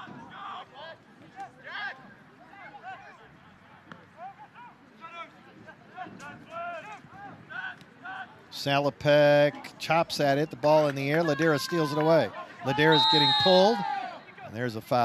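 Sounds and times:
faint open-air background noise: 0:00.0 - 0:15.0
players shouting and calling out: 0:00.0 - 0:15.0.

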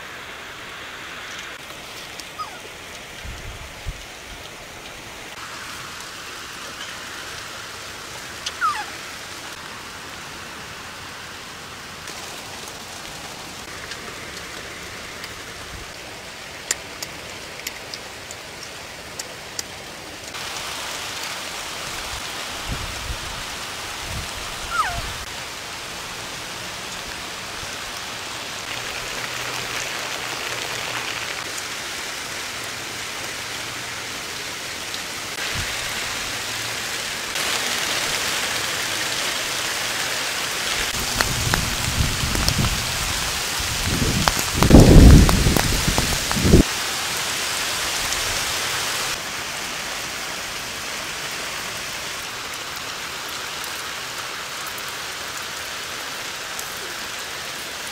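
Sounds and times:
steady rain falling: 0:00.0 - 0:57.9.

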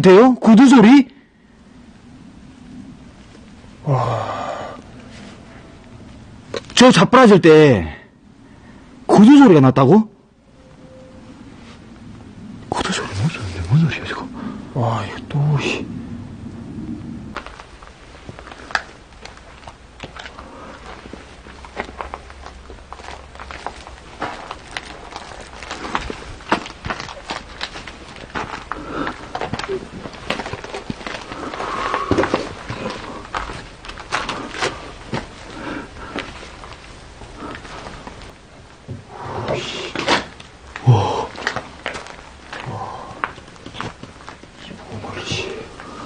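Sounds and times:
footsteps crunching over debris: 0:17.4 - 0:39.0, 0:39.9 - 0:46.0.

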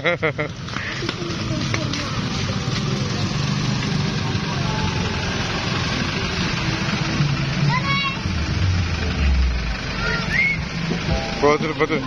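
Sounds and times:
outdoor noise: 0:00.0 - 0:12.0
vehicle engine running at low speed: 0:00.0 - 0:12.0.

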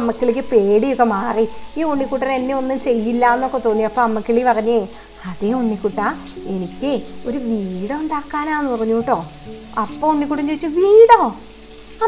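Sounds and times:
woman talking: 0:00.0 - 0:11.4
faint background music: 0:00.0 - 0:12.0.

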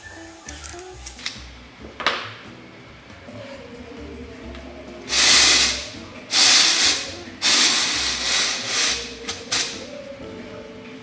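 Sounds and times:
knitting machine scraping: 0:05.1 - 0:09.8.

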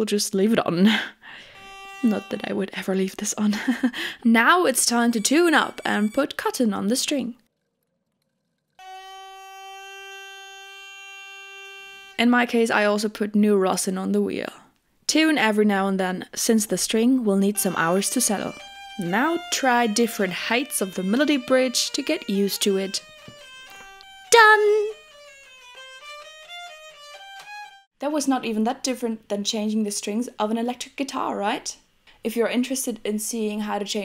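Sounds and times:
hurdy-gurdy melody: 0:01.4 - 0:06.7, 0:08.8 - 0:12.6, 0:17.2 - 0:27.9
hurdy-gurdy string held note: 0:01.6 - 0:02.9, 0:04.8 - 0:06.4, 0:08.8 - 0:12.2.

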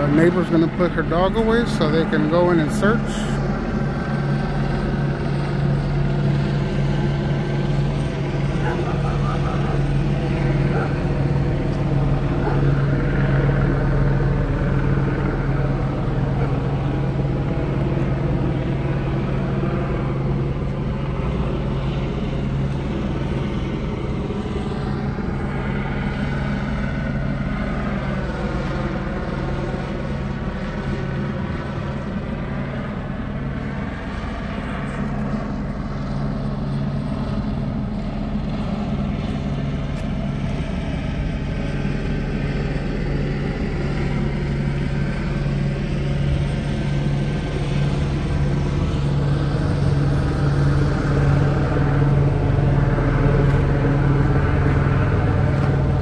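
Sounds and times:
helicopter engine and rotor drone: 0:00.0 - 0:56.0.

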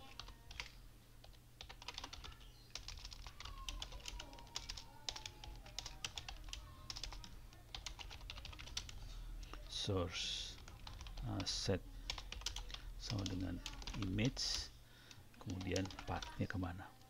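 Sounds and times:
typing on computer keyboard: 0:00.0 - 0:09.6, 0:10.6 - 0:11.5, 0:12.1 - 0:14.2, 0:15.4 - 0:16.4.

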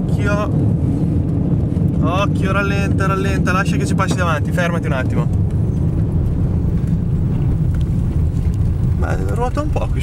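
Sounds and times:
wind and car rumble: 0:00.0 - 0:10.0.

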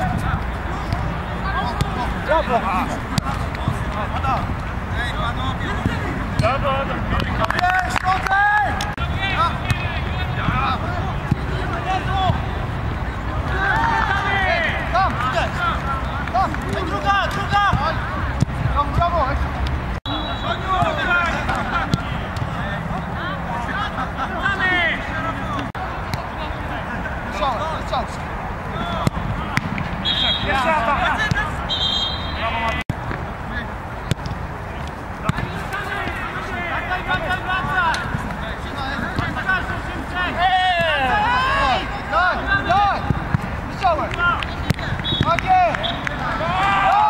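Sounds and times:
players shouting: 0:00.0 - 0:47.0
referee whistle blast: 0:20.1 - 0:20.7, 0:30.0 - 0:30.7, 0:31.7 - 0:32.6, 0:45.0 - 0:46.1.

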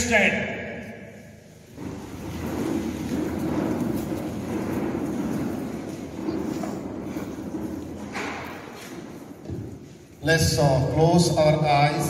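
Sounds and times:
audience shuffling to its feet: 0:01.4 - 0:10.7.

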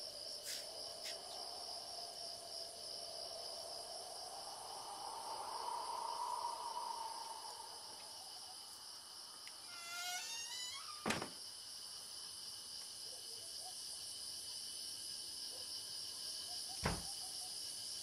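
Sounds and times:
crickets trilling: 0:00.0 - 0:18.0.

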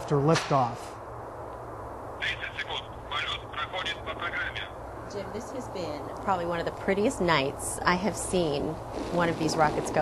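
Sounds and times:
steady low hum: 0:00.0 - 0:10.0
tinny voice over radio: 0:02.2 - 0:04.7.

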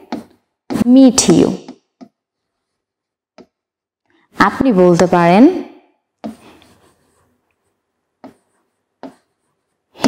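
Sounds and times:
marker writing on whiteboard: 0:00.0 - 0:03.9, 0:06.0 - 0:10.0.

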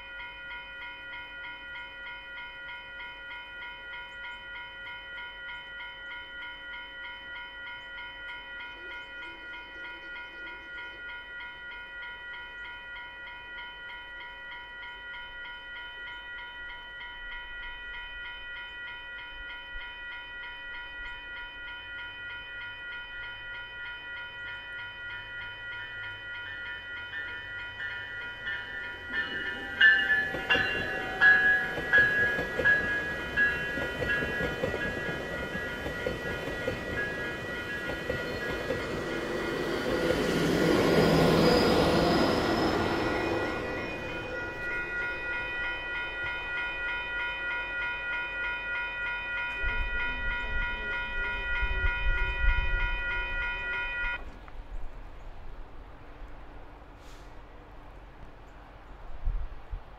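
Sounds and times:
level crossing bell dinging: 0:00.0 - 0:54.2
train rumble and wheel clatter: 0:20.6 - 0:59.9.

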